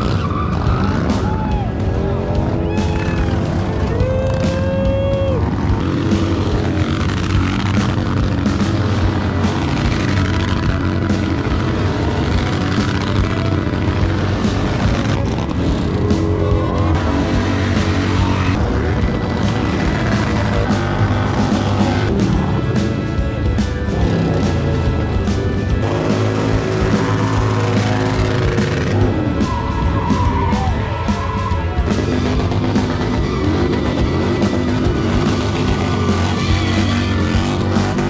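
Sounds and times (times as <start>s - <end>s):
background music: 0.0s - 38.0s
motorcycle engines revving: 0.0s - 38.0s.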